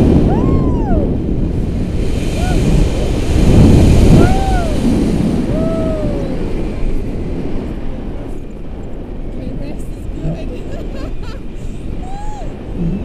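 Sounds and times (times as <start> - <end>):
wind rushing over microphone: 0.0 - 13.0
person whooping: 0.3 - 1.1, 2.3 - 2.8, 4.2 - 4.9, 5.5 - 6.6, 12.0 - 13.0.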